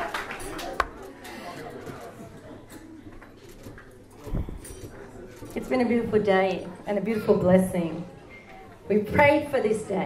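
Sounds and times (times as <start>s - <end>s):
faint room murmur: 0.0s - 10.0s.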